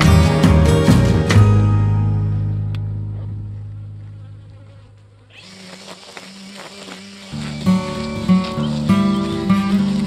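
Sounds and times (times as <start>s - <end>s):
background music: 0.0s - 4.2s
string trimmer cutting grass: 4.4s - 10.0s.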